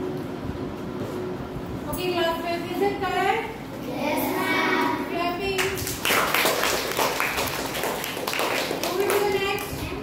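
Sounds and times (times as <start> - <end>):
children's voices: 3.8 - 5.4
children clapping: 5.6 - 10.0.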